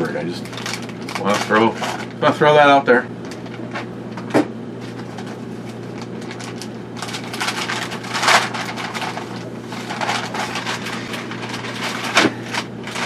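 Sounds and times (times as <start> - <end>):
steady low hum: 0.0 - 13.0
plastic mailer bag crinkling: 0.2 - 2.5, 4.8 - 13.0.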